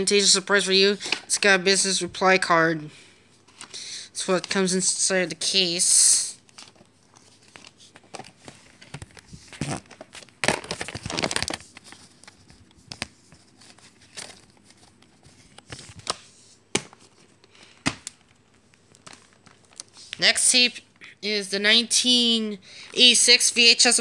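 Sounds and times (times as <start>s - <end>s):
paper rustling and crinkling: 6.4s - 20.2s.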